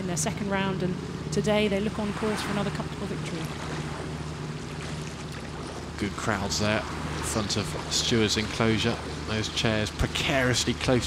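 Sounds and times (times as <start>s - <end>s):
low constant hum: 0.0s - 11.0s.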